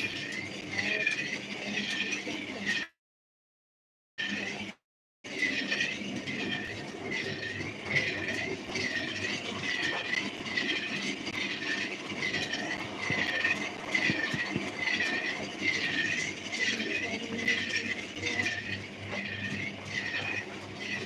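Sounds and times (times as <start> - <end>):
rhythmic mechanical squeak: 0.0 - 2.9, 5.3 - 21.0.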